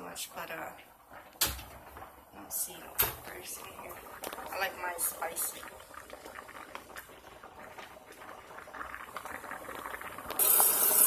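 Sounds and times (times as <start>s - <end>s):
pot of pasta boiling: 0.0s - 11.0s
faucet water running into sink: 10.4s - 11.0s.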